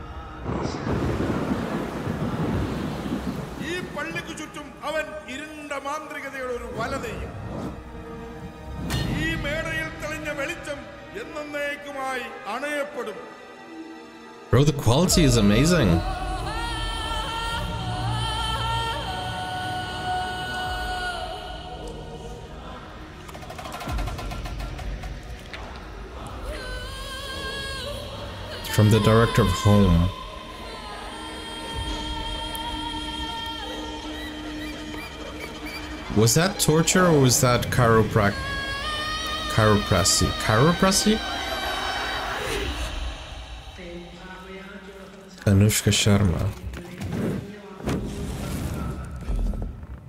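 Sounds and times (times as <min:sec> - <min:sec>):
deep thunder rumble: 0:00.0 - 0:04.6
rain-like hiss: 0:00.4 - 0:04.8
man narrating: 0:03.6 - 0:07.5, 0:09.0 - 0:13.5, 0:14.4 - 0:16.2, 0:28.6 - 0:30.3, 0:36.0 - 0:38.6, 0:39.4 - 0:41.4, 0:45.3 - 0:47.0.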